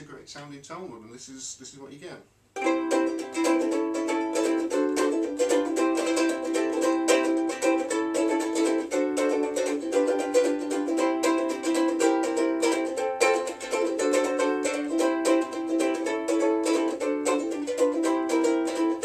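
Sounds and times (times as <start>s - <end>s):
ukulele strummed and picked: 2.6s - 19.0s.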